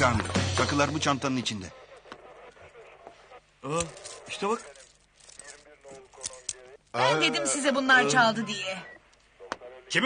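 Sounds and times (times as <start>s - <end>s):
quiet voices murmuring: 1.4s - 10.0s.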